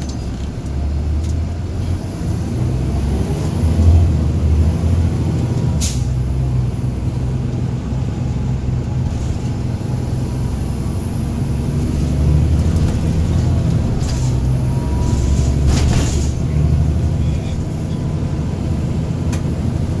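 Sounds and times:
bus diesel engine droning: 0.0 - 20.0.

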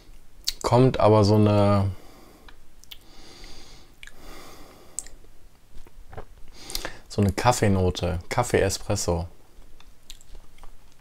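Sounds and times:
man breathing out through nose: 2.0 - 5.0
faint mouth clicks: 2.5 - 4.2, 4.9 - 5.2, 6.1 - 7.0.

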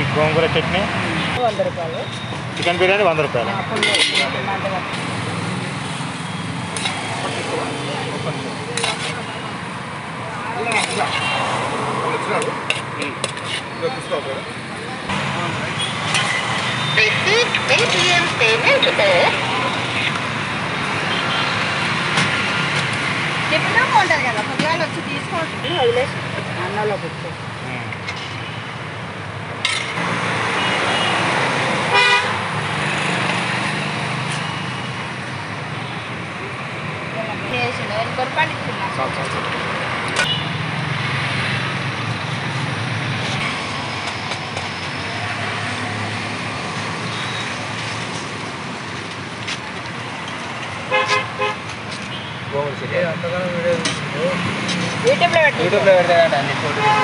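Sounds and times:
street traffic: 0.0 - 57.0
ladle scraping steel pot: 3.8 - 4.3
indistinct voices: 6.7 - 21.0
vehicle horn toot: 31.9 - 32.4, 50.9 - 52.4.

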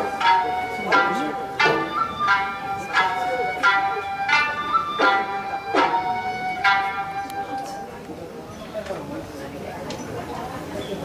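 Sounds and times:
plucked lute strings: 0.0 - 8.0.

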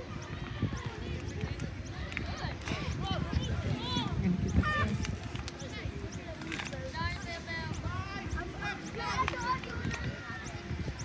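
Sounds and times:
people calling and shouting: 0.0 - 11.0.

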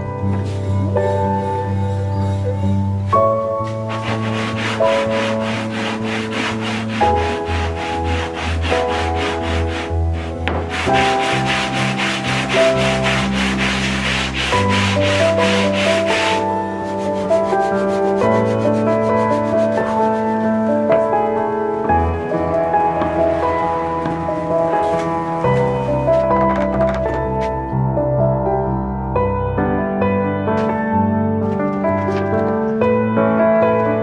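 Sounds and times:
soft background music: 0.0 - 34.0
wood rasping on sandpaper: 3.6 - 20.6.

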